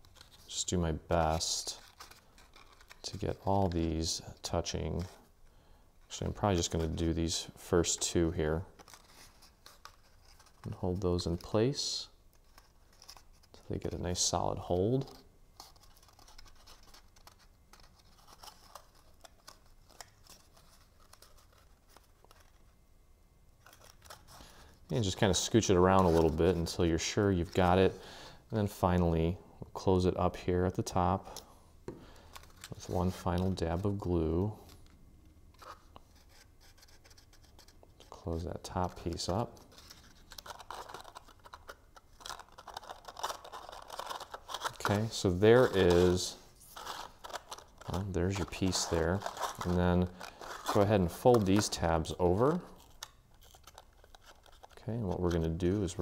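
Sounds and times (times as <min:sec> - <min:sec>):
cardstock rustling and scratching: 0:00.0 - 0:05.2, 0:07.8 - 0:11.7, 0:12.3 - 0:22.7, 0:23.6 - 0:27.9, 0:32.0 - 0:34.9, 0:35.5 - 0:56.0.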